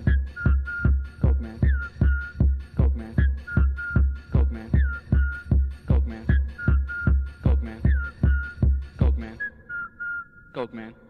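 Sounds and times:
thin whistling tone sliding in pitch: 0.0 - 2.4, 3.2 - 5.5, 6.3 - 8.6, 9.4 - 10.5
heavy kick drum: 0.0 - 9.2.

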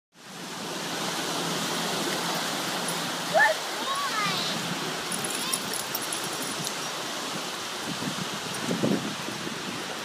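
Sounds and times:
waves washing on beach: 0.2 - 10.0.

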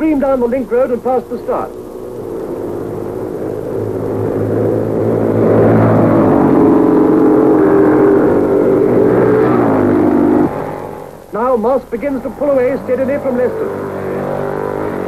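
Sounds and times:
racing cars passing: 0.0 - 15.0.

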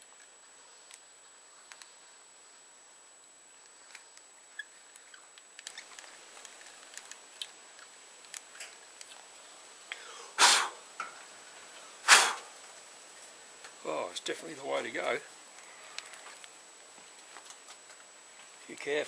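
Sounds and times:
loud noisy bursts: 10.4 - 10.8.

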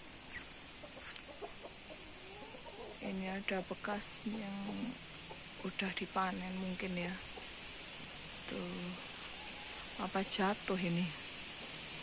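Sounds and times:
outdoor hiss: 0.0 - 12.0
chickens clucking: 0.3 - 5.8, 6.5 - 7.6.

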